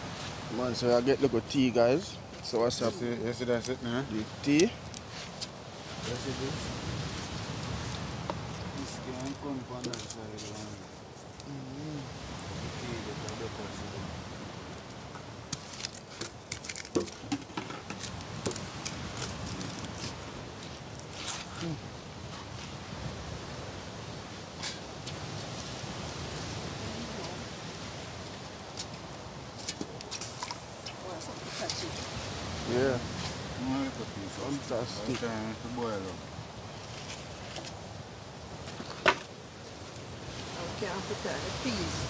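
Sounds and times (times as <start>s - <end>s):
wood fire crackling: 0.0s - 42.0s.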